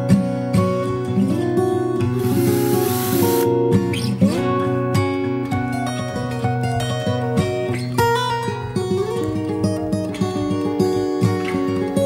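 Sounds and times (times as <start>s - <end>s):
acoustic guitar music: 0.0s - 12.0s
burst of hiss: 2.1s - 3.5s.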